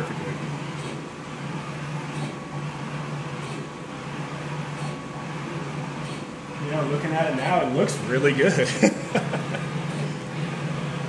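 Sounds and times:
printer humming: 0:00.0 - 0:11.0.

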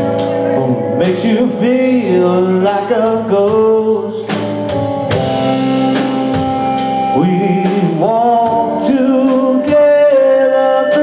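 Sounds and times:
drums: 0:00.0 - 0:11.0
electric and acoustic guitars: 0:00.0 - 0:11.0.

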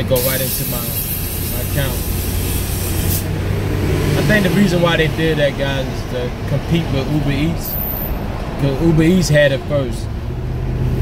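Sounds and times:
high hiss: 0:00.0 - 0:03.4.

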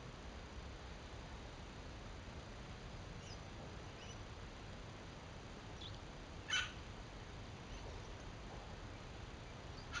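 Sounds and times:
bird chirps: 0:03.2 - 0:04.2, 0:05.8 - 0:06.7.

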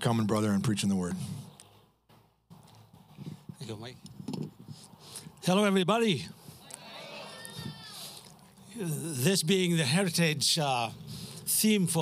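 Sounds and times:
microphone handling rustle: 0:02.5 - 0:05.3.

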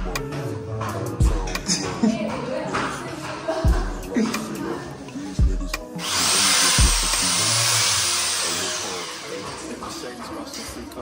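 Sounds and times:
music with heavy beat: 0:00.0 - 0:04.8, 0:05.4 - 0:10.2
power drill drilling: 0:06.0 - 0:10.1.

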